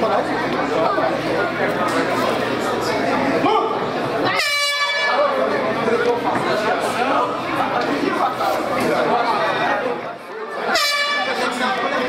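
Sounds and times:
spectators shouting and talking: 0:00.0 - 0:12.0
air horn blast: 0:04.3 - 0:05.4, 0:10.6 - 0:11.6.

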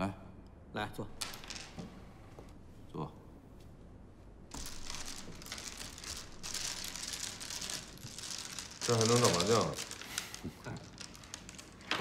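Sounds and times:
mahjong tiles shuffled on table: 0:01.2 - 0:02.0, 0:04.5 - 0:12.0.

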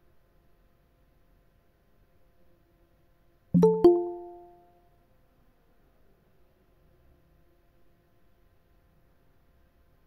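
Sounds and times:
two-note notification chime: 0:03.6 - 0:04.7.

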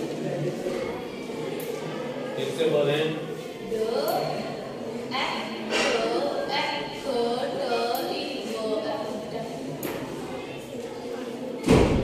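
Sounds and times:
loud thump: 0:11.6 - 0:12.0.

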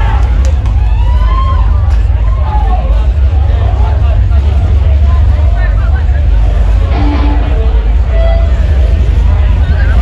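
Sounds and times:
heavy band playing live: 0:06.6 - 0:10.0.

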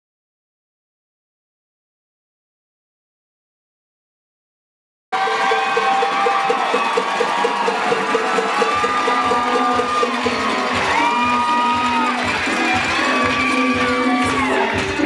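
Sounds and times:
crowd cheering and whooping: 0:05.2 - 0:15.0
dance music with steady beat: 0:05.2 - 0:15.0
heavy bass beat: 0:06.1 - 0:15.0.

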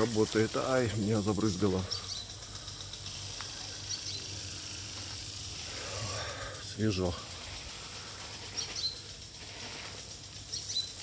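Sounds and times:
sprinkler spraying water: 0:00.0 - 0:11.0.

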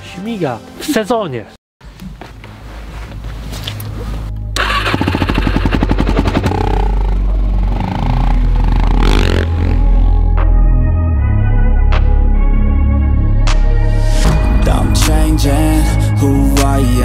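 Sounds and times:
motorcycle engine revving: 0:04.6 - 0:10.3.

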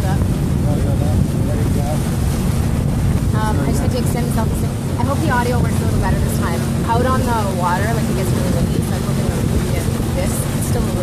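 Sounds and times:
boat engine rumble: 0:00.0 - 0:11.0
wind buffeting microphone: 0:00.0 - 0:11.0.

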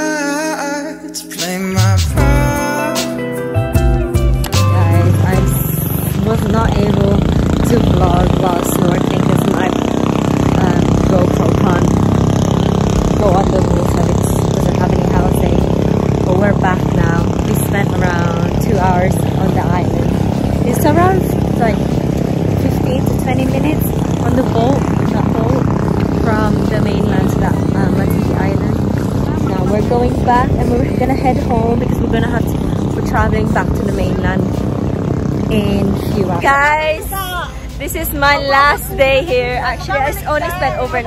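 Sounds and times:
boat engine droning: 0:03.8 - 0:41.0
woman talking: 0:04.7 - 0:12.0, 0:13.1 - 0:21.9, 0:22.5 - 0:34.6, 0:35.5 - 0:41.0.

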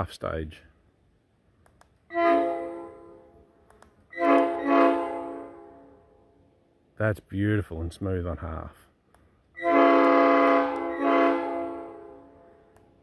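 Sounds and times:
air horn blasts: 0:02.1 - 0:03.3, 0:04.1 - 0:06.0, 0:09.6 - 0:12.6.

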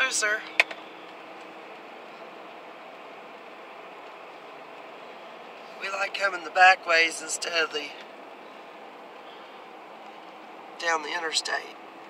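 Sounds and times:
car road and tyre noise: 0:00.0 - 0:12.0.

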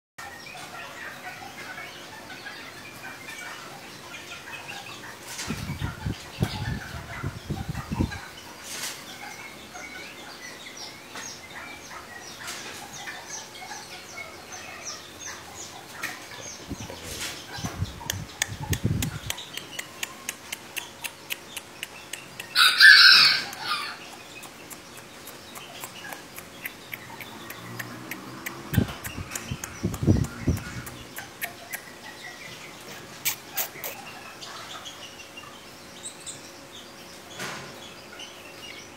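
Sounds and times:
chickens chirping and clucking: 0:00.2 - 0:38.9
loud chicken call: 0:22.5 - 0:24.0.

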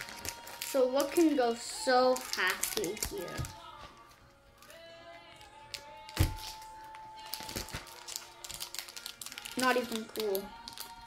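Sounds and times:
wrapper tearing crackles: 0:00.0 - 0:03.6, 0:04.6 - 0:11.0
foil wrapper crinkling: 0:00.0 - 0:11.0.

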